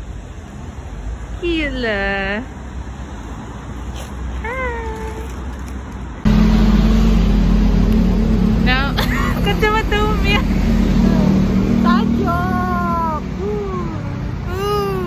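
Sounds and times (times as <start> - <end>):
road traffic rumble: 0.0 - 15.0
woman speaking: 8.6 - 13.9.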